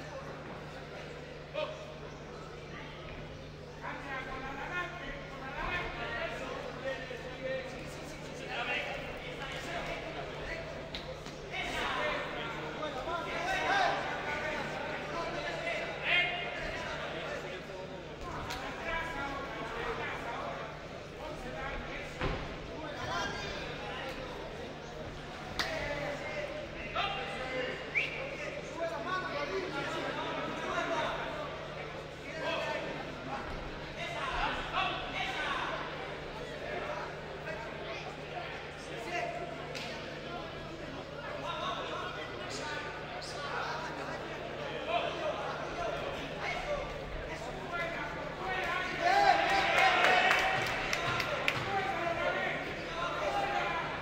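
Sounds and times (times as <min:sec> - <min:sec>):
crowd shouting in echoing hall: 0:00.0 - 0:54.0.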